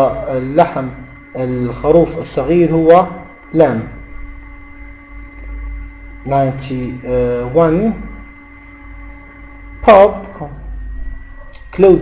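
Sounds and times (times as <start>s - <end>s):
faint steady whine: 0.0s - 12.0s
low electrical hum: 0.0s - 12.0s.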